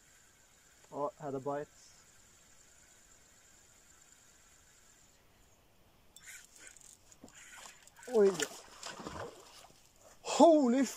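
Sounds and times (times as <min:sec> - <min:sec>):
faint high whine: 0:00.0 - 0:10.9.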